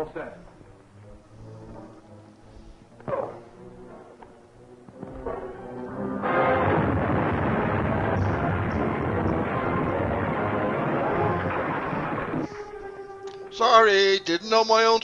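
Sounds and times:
film music: 0:00.0 - 0:15.0
loud explosion blast: 0:06.2 - 0:12.7.

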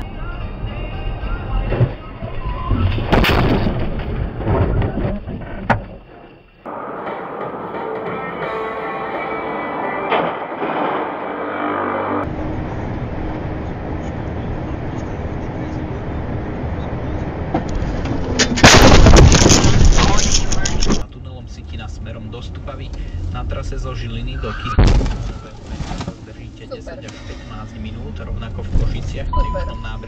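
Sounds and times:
car road noise: 0:00.0 - 0:30.0
loud vehicle collision: 0:01.6 - 0:08.4, 0:09.5 - 0:11.6, 0:17.4 - 0:21.0, 0:24.4 - 0:26.3.

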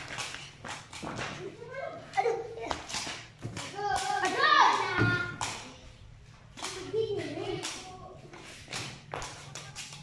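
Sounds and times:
sharp slaps: 0:02.6 - 0:05.8, 0:06.5 - 0:06.9.

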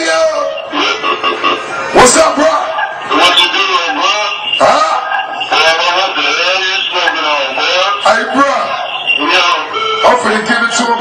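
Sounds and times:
man speaking loudly: 0:00.0 - 0:01.0, 0:01.9 - 0:11.0.

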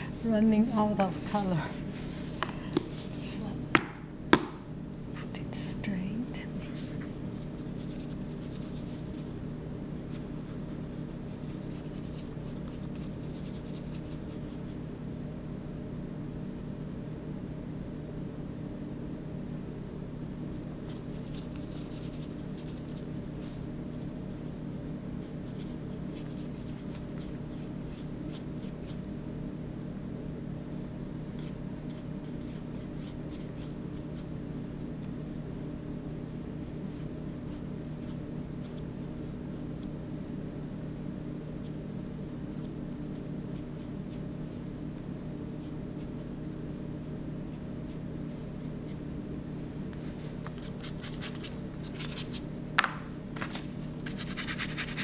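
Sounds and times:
steady hum: 0:00.0 - 0:55.0
quick scratching strokes on paper: 0:07.4 - 0:09.3, 0:10.1 - 0:14.8, 0:20.9 - 0:23.5, 0:54.0 - 0:55.0.

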